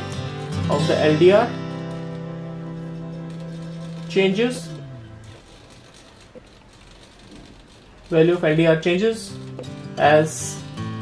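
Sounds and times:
servo motor chattering: 0:03.3 - 0:08.7.

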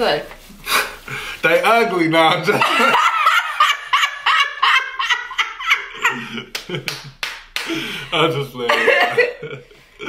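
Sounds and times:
man laughing: 0:02.5 - 0:07.0, 0:08.2 - 0:10.0
woman laughing: 0:02.6 - 0:06.8, 0:08.6 - 0:09.6
hand claps: 0:06.5 - 0:07.8.

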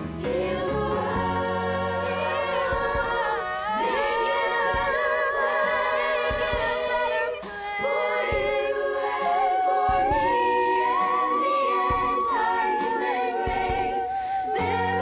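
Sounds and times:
children's choir singing: 0:00.0 - 0:15.0
girls singing solo with vibrato: 0:00.0 - 0:15.0.

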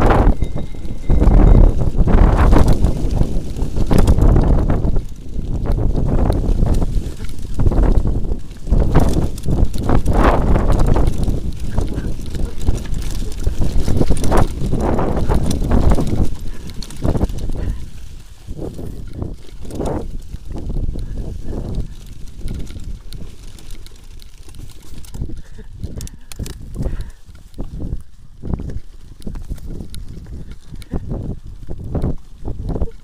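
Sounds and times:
bike rattling over bumps: 0:00.0 - 0:33.0
wind rumble on microphone: 0:00.0 - 0:33.0.

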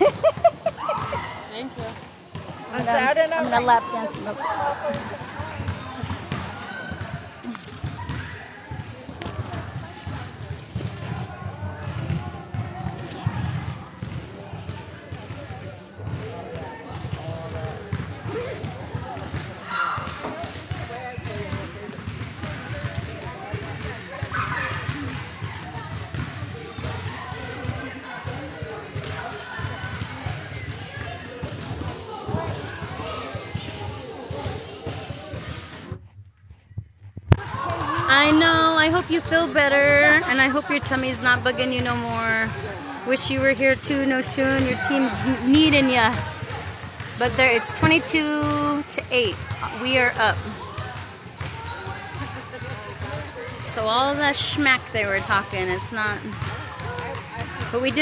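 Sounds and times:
basketballs bouncing on hardwood: 0:10.4 - 0:19.6, 0:25.8 - 0:27.9, 0:43.4 - 0:53.2, 0:56.2 - 0:58.0
people talking: 0:38.0 - 0:46.2, 0:47.2 - 0:50.6, 0:52.1 - 0:56.4, 0:57.6 - 0:58.0.

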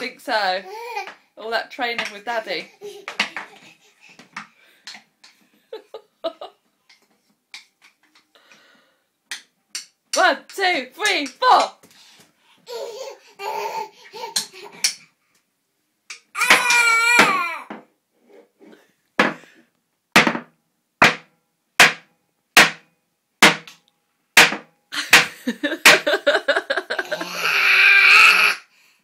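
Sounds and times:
toy mallet knocking on wooden box: 0:20.2 - 0:22.8.

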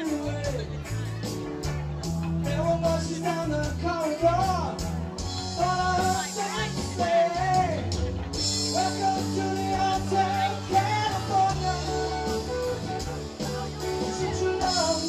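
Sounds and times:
person singing lead vocal: 0:00.0 - 0:00.9, 0:02.4 - 0:15.0
bass: 0:00.0 - 0:15.0
drums: 0:00.0 - 0:15.0
electric guitar: 0:00.0 - 0:15.0.

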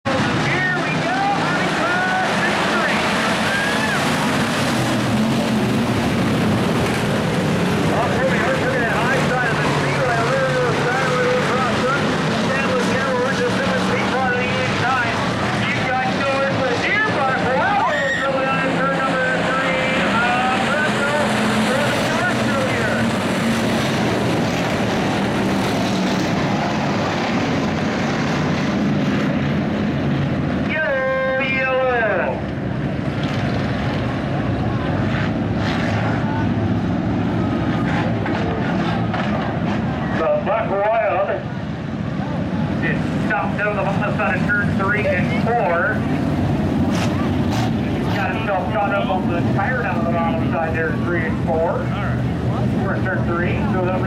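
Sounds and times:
stock car engines racing: 0:00.0 - 0:54.0
voices: 0:00.1 - 0:23.8, 0:30.6 - 0:32.6, 0:36.0 - 0:54.0.

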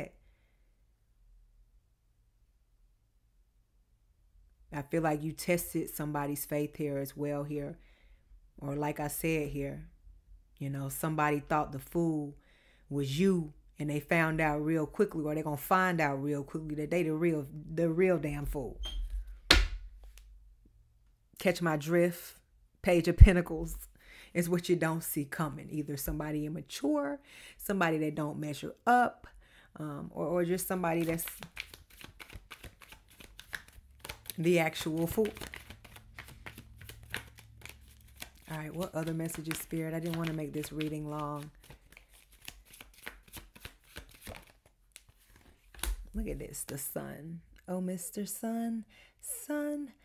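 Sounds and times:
cards being shuffled: 0:30.6 - 0:46.9.

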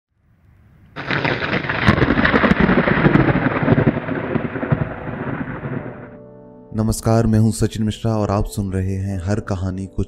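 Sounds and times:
thunder rumbling: 0:00.8 - 0:06.2
heavy rain: 0:01.0 - 0:06.2
sharp thunder cracks: 0:01.0 - 0:06.2.

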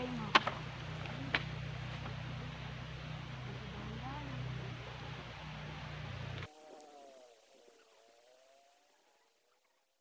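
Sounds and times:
faint engine hum: 0:00.0 - 0:07.4.

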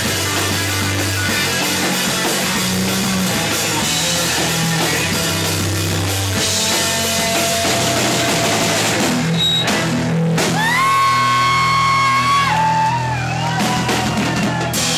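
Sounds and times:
live rock band playing loudly: 0:00.0 - 0:14.9.

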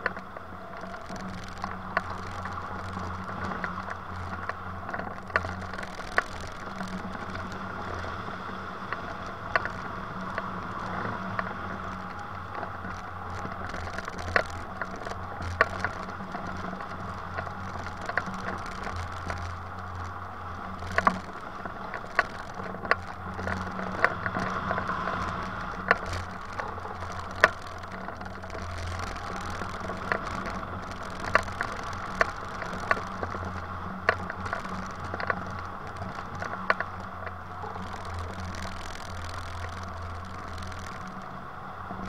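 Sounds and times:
sharp clicks: 0:00.0 - 0:42.0
wind noise on microphone: 0:00.0 - 0:42.0.

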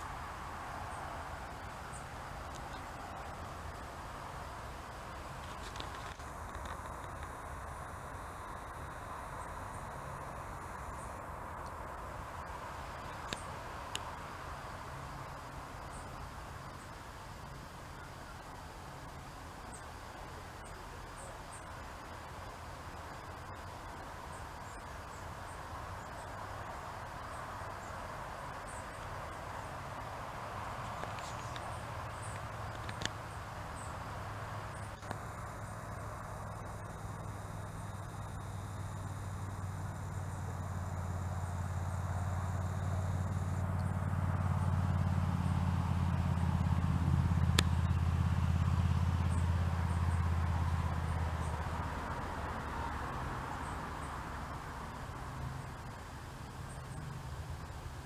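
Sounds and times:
distant engine passing by: 0:00.0 - 0:58.0.

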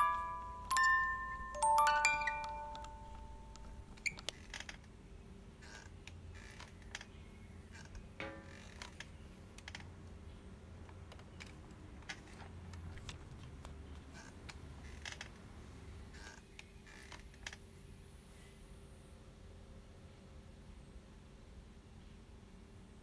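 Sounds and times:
bell-like chime notes: 0:00.0 - 0:03.9
short creak: 0:04.0 - 0:04.9, 0:05.6 - 0:07.1, 0:07.7 - 0:09.9, 0:14.0 - 0:15.4, 0:16.1 - 0:17.6.

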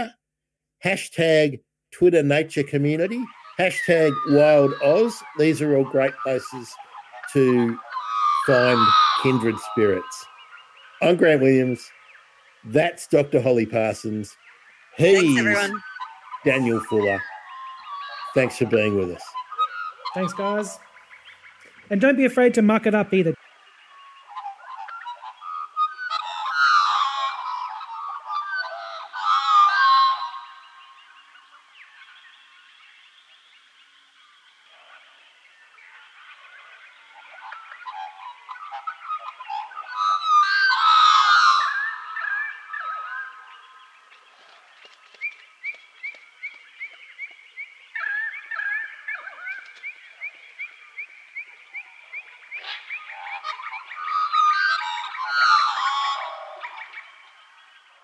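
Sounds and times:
birds calling and warbling: 0:02.0 - 0:58.0.

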